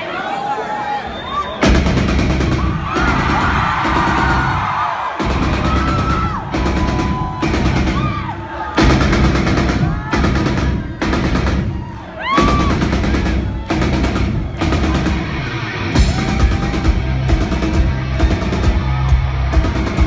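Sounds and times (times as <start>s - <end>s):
rock drum kit playing: 1.6s - 20.0s.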